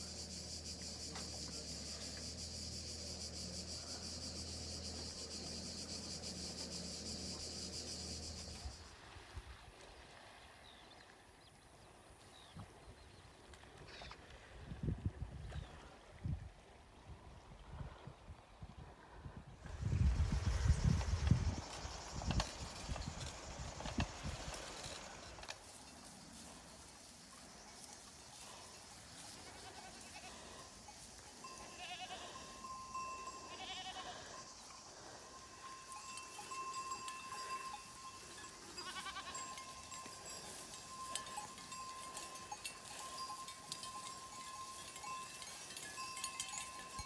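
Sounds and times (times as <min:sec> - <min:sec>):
goat bells ringing: 0:27.4 - 0:47.0
goats bleating: 0:29.3 - 0:30.7, 0:31.5 - 0:32.6, 0:33.2 - 0:34.4, 0:38.6 - 0:39.6.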